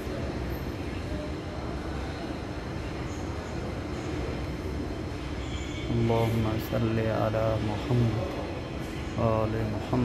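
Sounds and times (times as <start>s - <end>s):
shopping mall rumble and hum: 0.0s - 10.0s.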